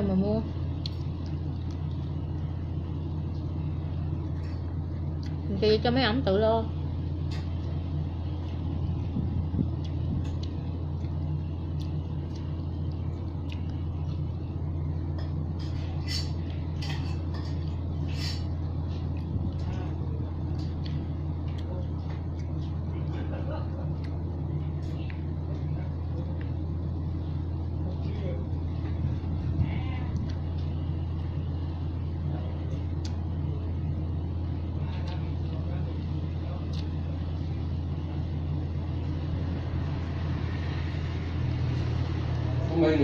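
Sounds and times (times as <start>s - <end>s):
electric fan humming: 0.0s - 43.0s.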